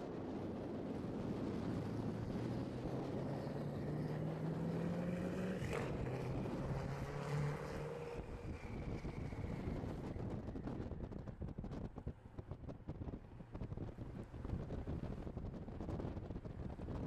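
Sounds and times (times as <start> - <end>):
car engine pulling away: 1.4 - 10.3.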